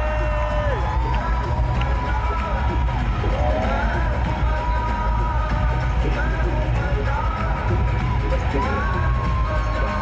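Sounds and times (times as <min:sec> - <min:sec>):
crowd noise: 0:00.0 - 0:10.0
live concert music over pa: 0:00.0 - 0:10.0.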